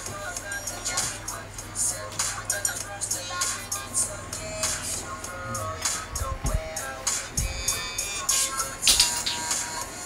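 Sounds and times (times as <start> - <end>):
dance music with steady beat: 0.0 - 10.0.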